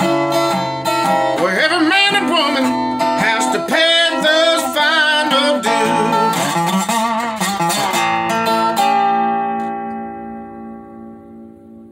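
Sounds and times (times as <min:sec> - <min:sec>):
acoustic guitar chord ringing: 0:00.0 - 0:11.9.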